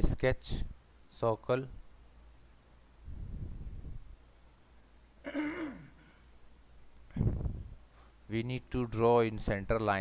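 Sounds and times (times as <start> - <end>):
man clearing throat: 5.2 - 6.2.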